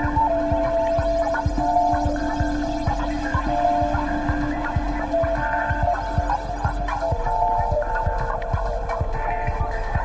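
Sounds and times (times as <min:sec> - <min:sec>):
low beat thumps: 0:00.0 - 0:10.0
low synth drone: 0:00.0 - 0:10.0.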